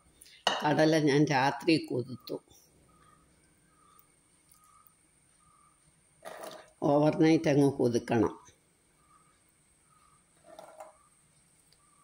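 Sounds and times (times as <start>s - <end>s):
person speaking: 0.5s - 2.5s, 6.8s - 8.5s.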